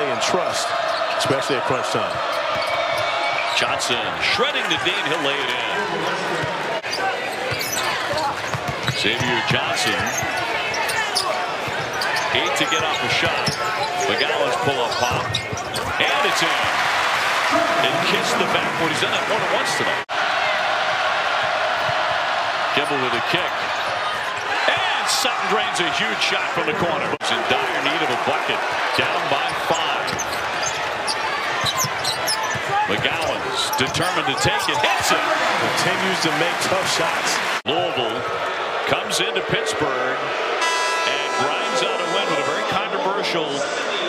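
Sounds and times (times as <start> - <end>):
arena crowd noise: 0.0 - 44.0
sneakers squeaking: 0.7 - 3.8, 6.3 - 17.4, 21.4 - 24.8, 28.1 - 35.4.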